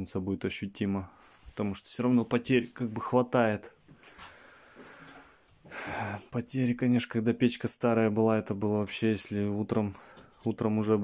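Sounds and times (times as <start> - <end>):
faint room noise: 0.0 - 11.0
man breathing in: 3.9 - 6.3.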